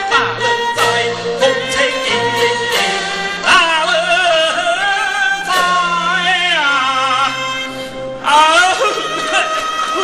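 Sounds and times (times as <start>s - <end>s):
opera ensemble melody: 0.0s - 10.0s.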